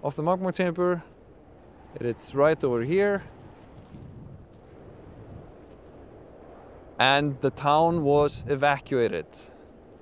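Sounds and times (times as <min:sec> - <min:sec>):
wind buffeting microphone: 0:00.6 - 0:10.0.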